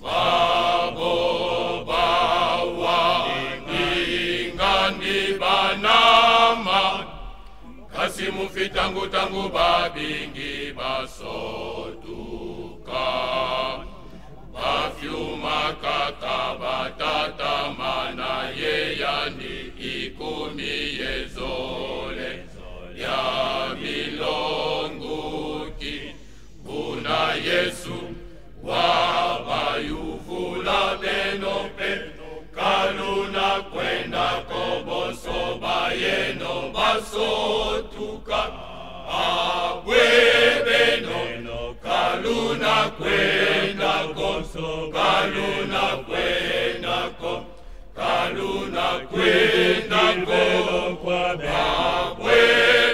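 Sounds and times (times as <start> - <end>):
male vocal group singing: 0.0 - 52.9.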